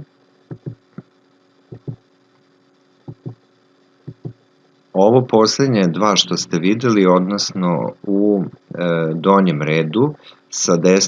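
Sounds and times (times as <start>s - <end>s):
faint electrical hum: 0.0s - 11.0s
soft paired thumps: 0.5s - 1.0s, 1.7s - 2.0s, 3.1s - 3.4s, 4.1s - 4.4s.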